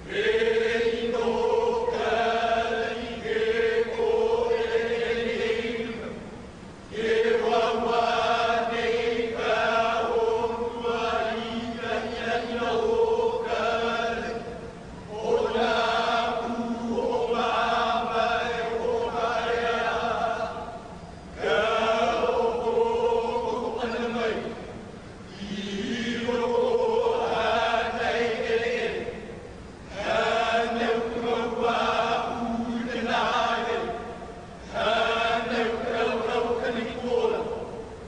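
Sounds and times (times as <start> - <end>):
men chanting together: 0.0 - 6.2, 6.9 - 29.3, 29.9 - 37.8.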